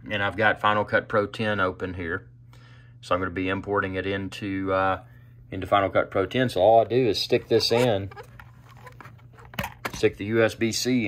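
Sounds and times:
faint handling noise: 6.7s - 11.0s.

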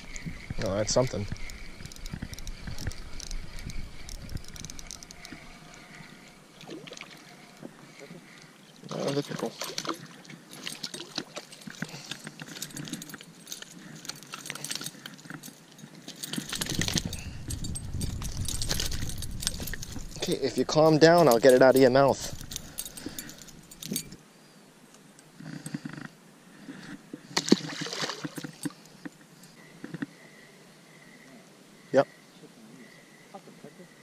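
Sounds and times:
reel and rod clicks and rattles: 0.0s - 24.2s, 27.4s - 30.1s
fishing reel being cranked: 0.1s - 6.4s, 16.2s - 24.1s.

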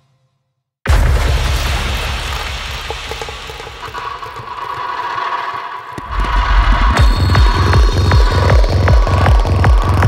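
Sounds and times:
pounding kick drum and bassline: 6.0s - 10.0s.

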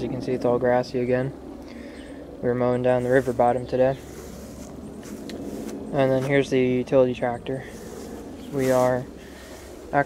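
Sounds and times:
outdoor background hiss: 0.0s - 10.0s
footsteps on grass: 2.8s - 10.0s.

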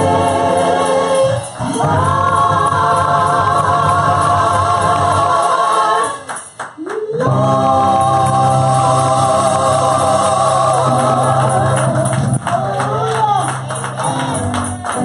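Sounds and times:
women singing gospel chord: 0.0s - 6.4s, 7.2s - 12.8s
keyboard: 0.0s - 6.5s, 7.2s - 15.0s.

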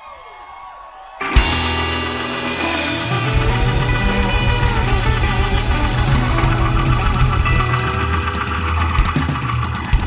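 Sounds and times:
rock band playing: 1.2s - 10.0s
drum hits: 1.4s - 10.0s.

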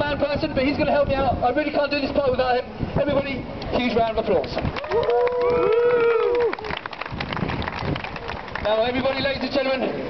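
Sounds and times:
crowd applauding: 4.4s - 9.4s
man shouting woo: 4.9s - 6.5s.

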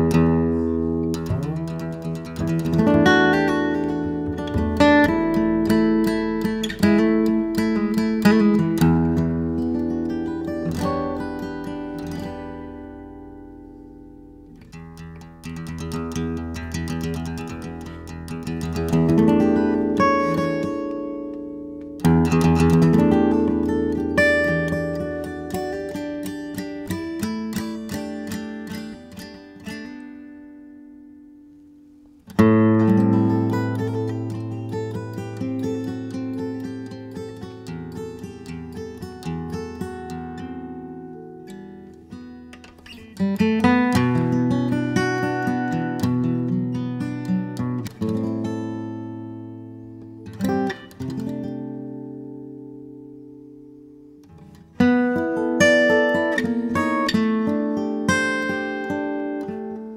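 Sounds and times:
plucked acoustic guitar: 0.0s - 59.9s.

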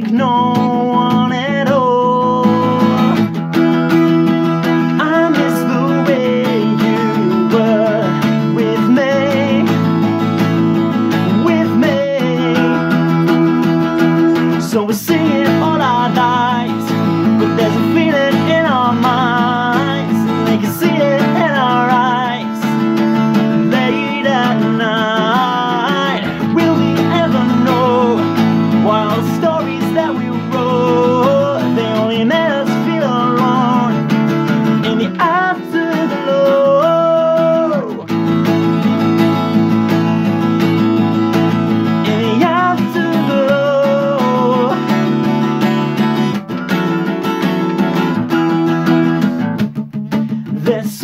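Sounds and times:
man singing: 0.0s - 46.4s, 50.2s - 51.0s
acoustic guitar: 0.0s - 51.0s.

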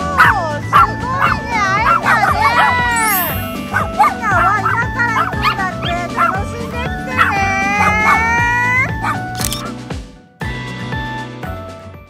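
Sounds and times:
dogs barking and yipping: 0.0s - 9.8s
background music with beat: 0.0s - 12.0s
dog howling: 0.2s - 6.5s, 7.2s - 9.3s.

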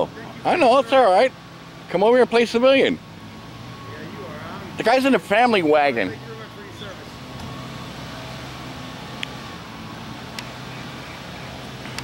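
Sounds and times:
minivan engine idling: 0.0s - 12.0s.

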